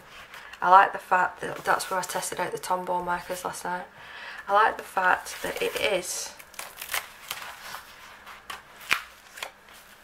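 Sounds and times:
book pages flipping: 0:05.2 - 0:10.0.

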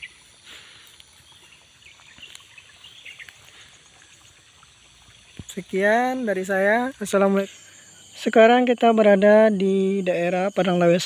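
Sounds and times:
bird chirps: 0:00.0 - 0:04.3
insects droning: 0:00.0 - 0:11.0.

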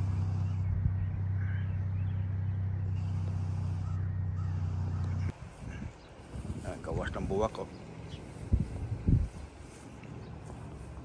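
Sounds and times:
faint bird calls: 0:00.0 - 0:06.4
low motor hum: 0:00.0 - 0:11.0.

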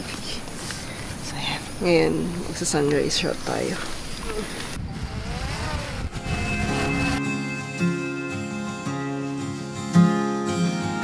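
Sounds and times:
low wind rumble: 0:03.9 - 0:07.3
drone propeller buzz: 0:04.8 - 0:08.6.

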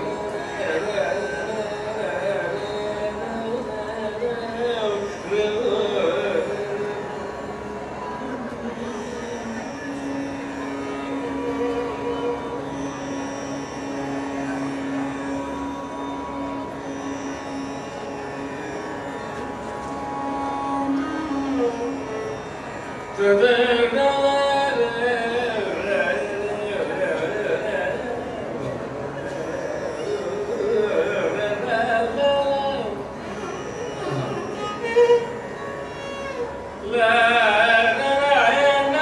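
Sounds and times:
man singing: 0:00.0 - 0:07.1, 0:23.2 - 0:28.4, 0:29.3 - 0:33.0, 0:36.8 - 0:39.0
violin: 0:00.0 - 0:39.0.

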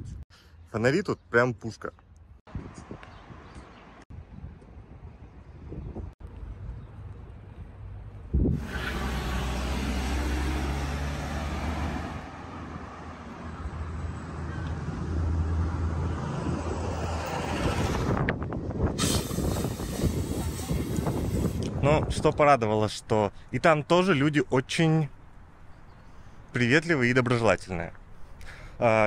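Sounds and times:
traffic rumble: 0:06.0 - 0:29.0.

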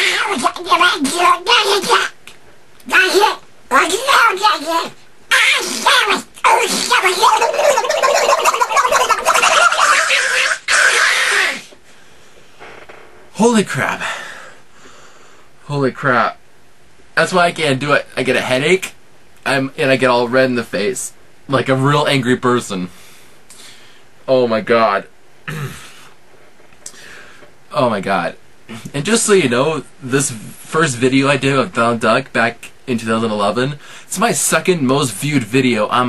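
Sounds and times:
man doing duck voice: 0:00.0 - 0:02.2, 0:02.9 - 0:11.8
man clearing his throat: 0:25.5 - 0:26.1.

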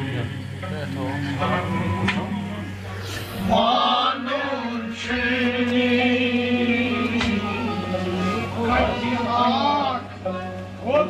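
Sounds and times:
man singing a long note: 0:00.0 - 0:11.0
steady low hum: 0:00.0 - 0:11.0.

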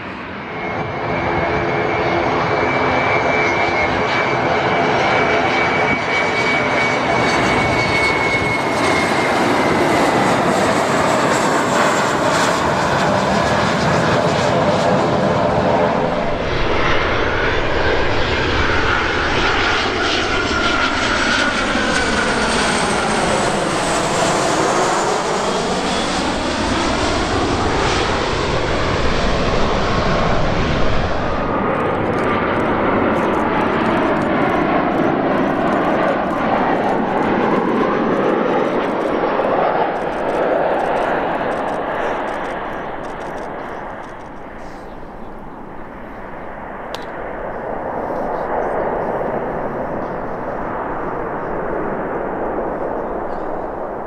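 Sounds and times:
jet engine rumble and whine: 0:00.0 - 0:54.0
jet passing low overhead: 0:00.0 - 0:54.0.

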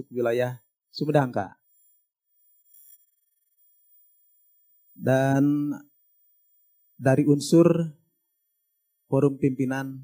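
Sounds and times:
high-pitched electronic tones: 0:00.0 - 0:10.0.

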